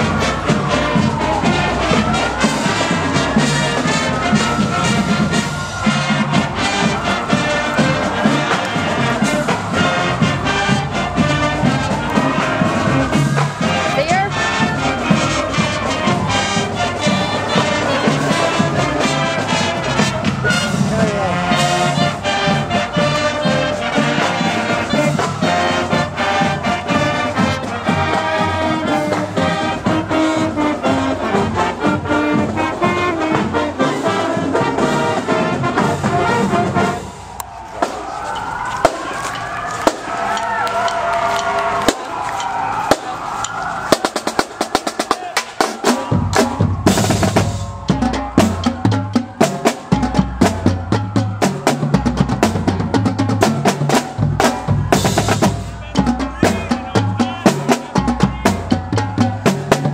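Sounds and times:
marching band playing: 0.0 - 59.9.

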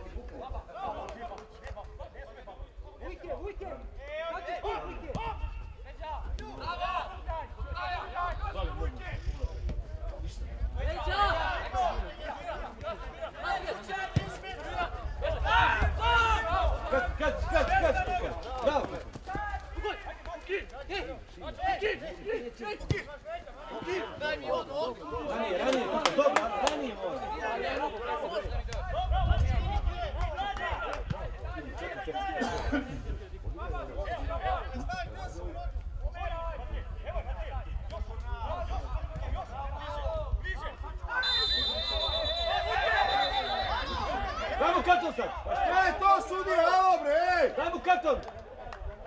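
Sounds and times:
voices shouting and calling: 10.7 - 48.3.

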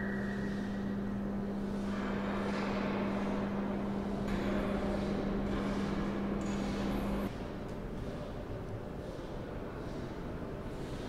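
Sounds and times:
indistinct background noise: 0.0 - 11.0
low machine hum: 0.0 - 11.0.

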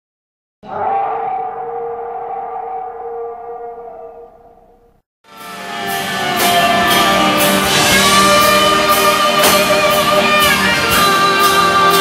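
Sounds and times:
sustained tone: 0.6 - 5.0.

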